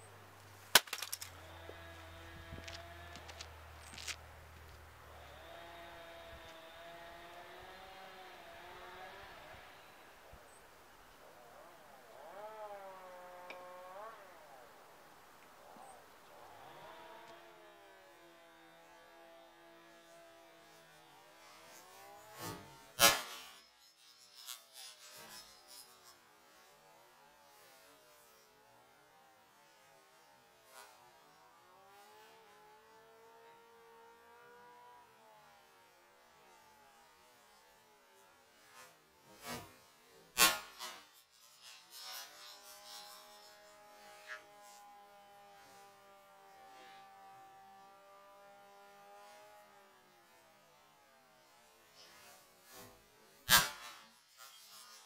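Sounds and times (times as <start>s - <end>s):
mallet smashing laptop keyboard: 0.7s - 1.3s.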